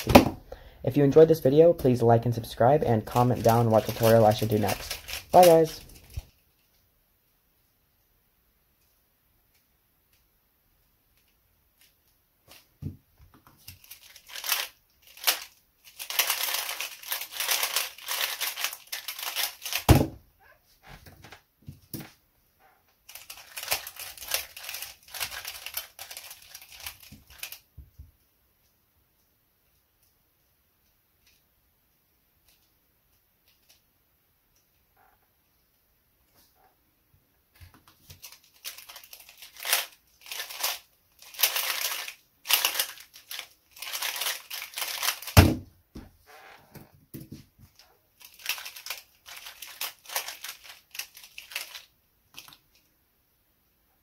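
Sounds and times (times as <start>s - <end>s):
plastic puzzle clacking: 3.1s - 6.2s, 13.6s - 20.0s, 23.1s - 27.6s, 37.8s - 45.4s, 47.1s - 52.9s
rapid puzzle clicking: 13.8s - 19.9s, 23.1s - 27.6s, 38.2s - 45.4s, 48.2s - 52.5s.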